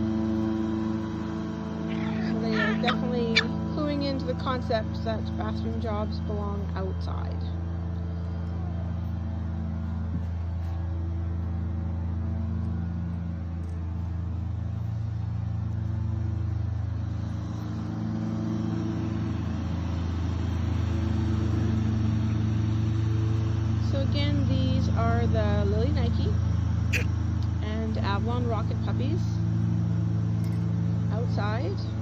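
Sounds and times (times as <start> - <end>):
lawn mower engine running: 0.0 - 32.0.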